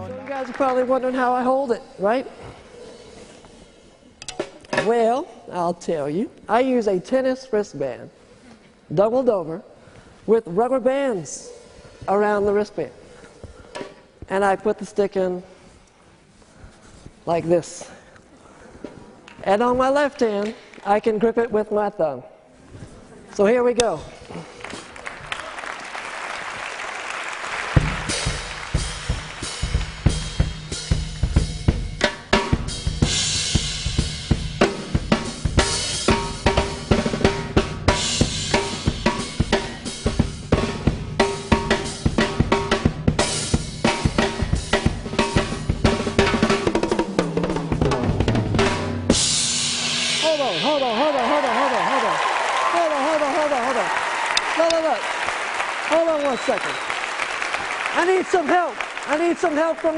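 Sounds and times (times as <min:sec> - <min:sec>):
audience cheering and applauding: 0:00.0 - 0:01.2, 0:24.6 - 0:30.4, 0:50.4 - 0:59.9
acoustic drum kit playing: 0:00.0 - 0:05.1, 0:27.5 - 0:51.4.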